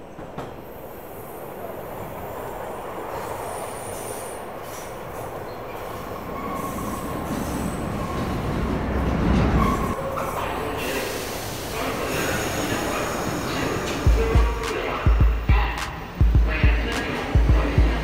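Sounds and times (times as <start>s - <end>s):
subway train wheels squealing: 0.0s - 14.1s
train rumble: 0.0s - 18.0s.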